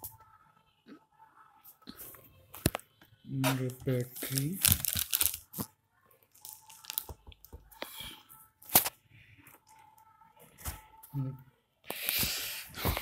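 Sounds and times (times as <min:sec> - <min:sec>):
person speaking: 0:03.3 - 0:04.8.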